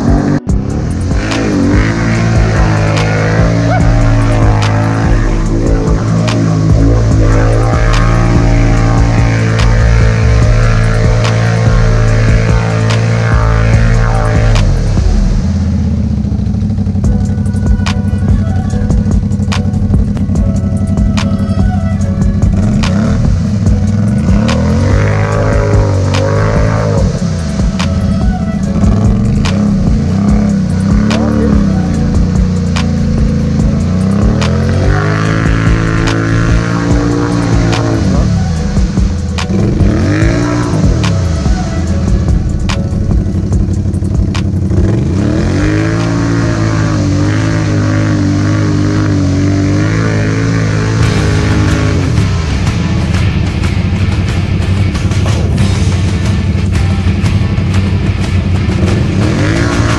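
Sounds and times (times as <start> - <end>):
atv engine revving: 0.0 - 59.9
tires churning through mud: 0.0 - 59.9.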